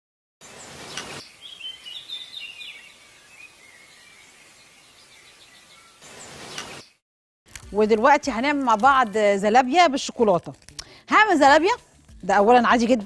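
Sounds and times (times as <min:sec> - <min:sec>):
birds chirping: 0:00.5 - 0:07.0.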